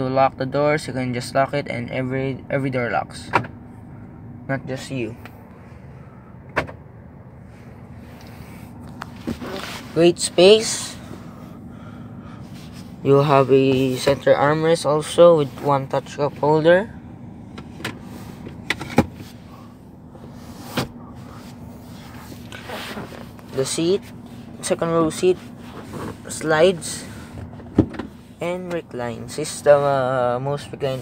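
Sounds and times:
low cabin hum: 0:00.0 - 0:31.0.

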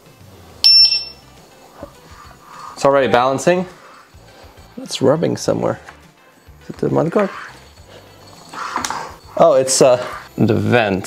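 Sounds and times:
short high beep: 0:00.6 - 0:01.2.

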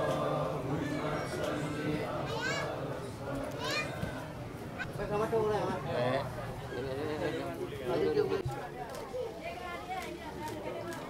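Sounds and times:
background voices: 0:00.0 - 0:05.1.

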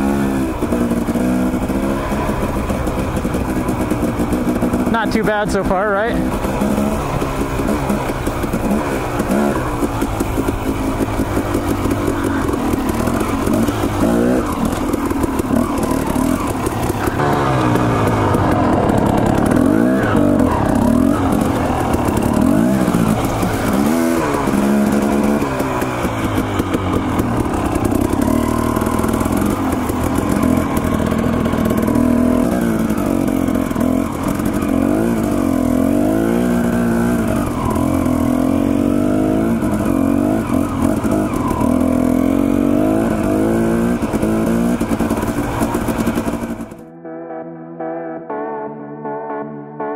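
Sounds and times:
dirt bike engine revving: 0:00.0 - 0:48.4.

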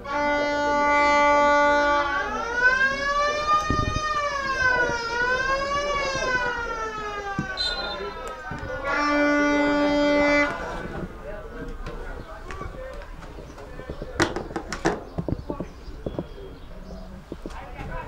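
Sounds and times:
horn blast: 0:00.0 - 0:02.4, 0:07.5 - 0:10.9
siren-like wail: 0:00.2 - 0:10.4.

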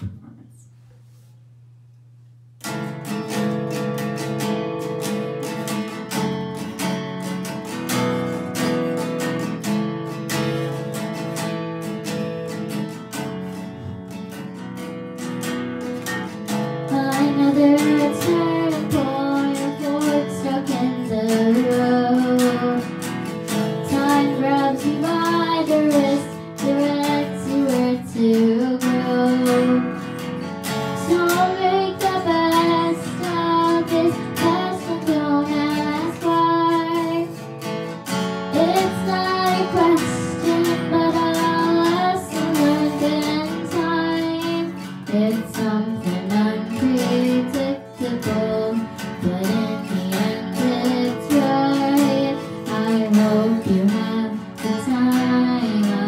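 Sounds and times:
acoustic guitar strumming: 0:02.5 - 0:56.0
girl singing a slow ballad: 0:03.3 - 0:56.0.

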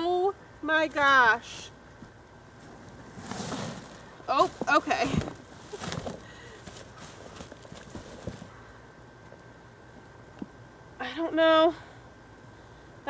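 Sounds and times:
plastic bag rustling: 0:02.6 - 0:08.6.

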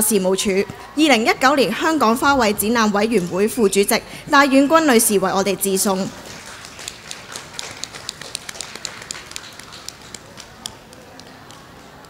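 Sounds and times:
murmur of a hall: 0:00.0 - 0:12.0.

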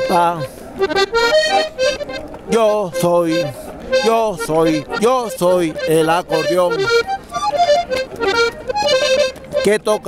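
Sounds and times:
accordion playing: 0:00.0 - 0:10.0.

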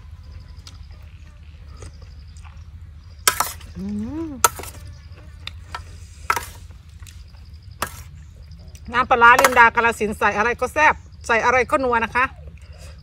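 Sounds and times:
person humming: 0:03.7 - 0:04.4.

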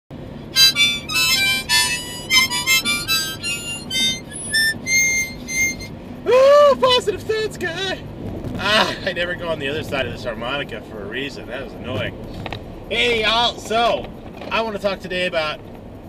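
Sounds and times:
harmonica short high notes: 0:00.4 - 0:06.1.

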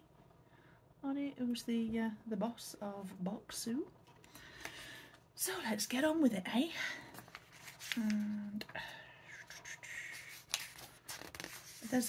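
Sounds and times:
paper and card rustling: 0:07.0 - 0:12.0.

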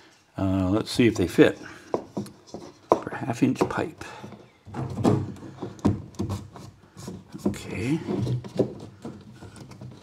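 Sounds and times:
plastic fitting scraping on wood: 0:01.0 - 0:10.0.

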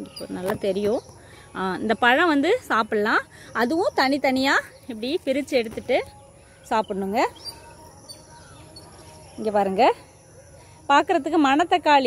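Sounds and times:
faint bird chirps: 0:00.0 - 0:11.6
high insect drone: 0:00.0 - 0:12.0.

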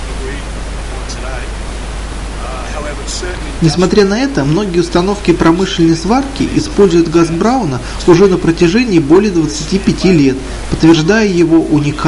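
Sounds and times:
faint voice: 0:00.0 - 0:01.5, 0:02.4 - 0:03.9, 0:09.7 - 0:10.8
steady hiss: 0:00.0 - 0:12.0.

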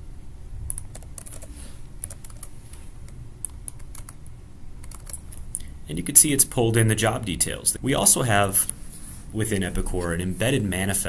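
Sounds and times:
faint low hum: 0:00.0 - 0:11.0
keyboard and mouse clicks: 0:00.7 - 0:05.7.

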